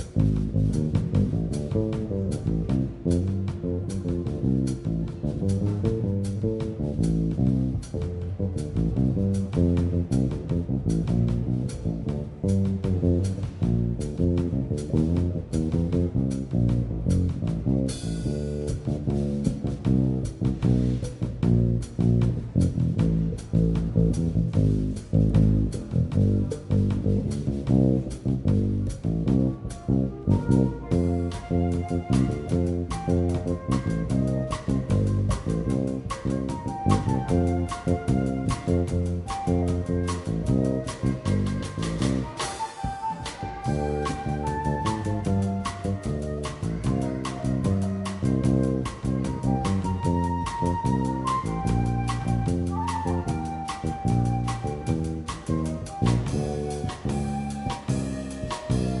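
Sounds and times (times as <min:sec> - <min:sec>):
electric bass plucked notes: 0:00.0 - 0:42.5, 0:43.1 - 0:59.0
jazz combo playing bossa nova: 0:00.0 - 0:59.0.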